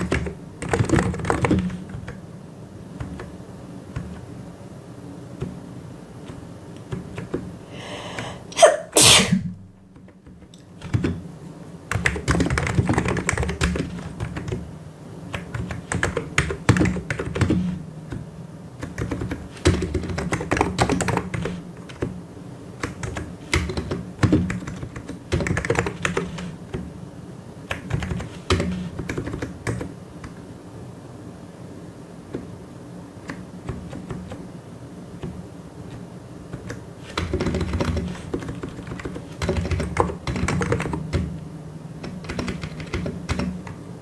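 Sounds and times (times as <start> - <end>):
mechanical keyboard typing: 0.0 - 2.2, 3.0 - 4.2, 5.4 - 5.6, 6.2 - 7.5, 10.0 - 11.2, 11.9 - 14.7, 15.3 - 18.2, 18.8 - 22.2, 22.8 - 26.9, 27.7 - 30.4, 33.2 - 34.4, 35.2 - 41.4, 42.0 - 43.8.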